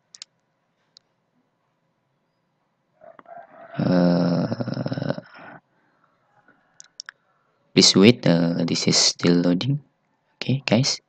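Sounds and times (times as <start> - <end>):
throaty growling vocal sound: 3.7 - 5.6.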